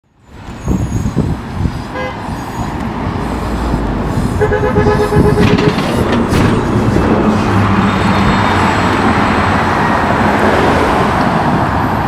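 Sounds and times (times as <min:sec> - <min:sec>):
bus engine rumble: 0:00.1 - 0:12.0
horn toot: 0:04.4 - 0:06.0.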